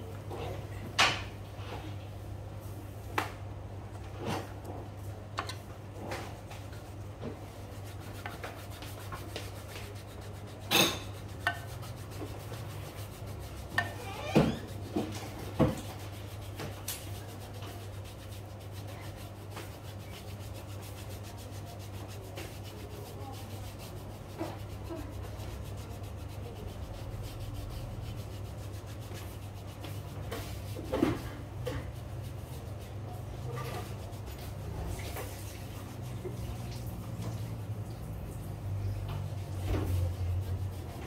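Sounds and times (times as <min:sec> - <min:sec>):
hands rubbing skin: 0:06.4 - 0:31.2, 0:31.8 - 0:37.1.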